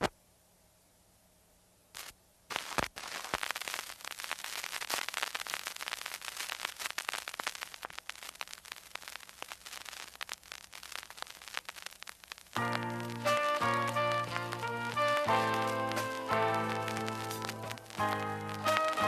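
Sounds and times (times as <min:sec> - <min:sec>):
crackling and popping static: 0:00.0 - 0:00.2, 0:01.9 - 0:19.0.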